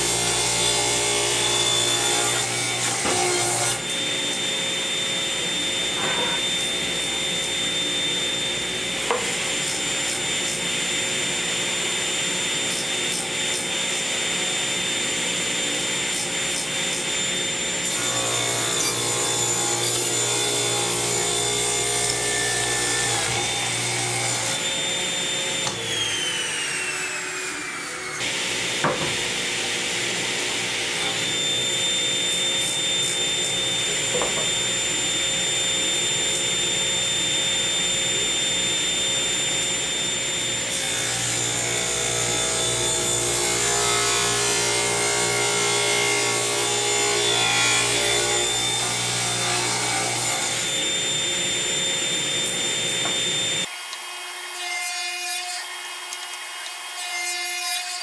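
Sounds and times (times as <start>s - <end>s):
table saw cutting wood: 0.0s - 58.0s.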